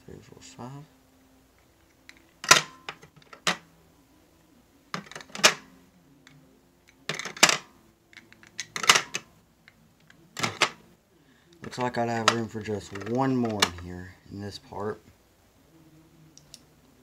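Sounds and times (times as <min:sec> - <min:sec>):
coin holders clacking: 0:02.0 - 0:03.7, 0:04.9 - 0:05.7, 0:06.8 - 0:09.3, 0:10.4 - 0:10.8, 0:11.6 - 0:13.9.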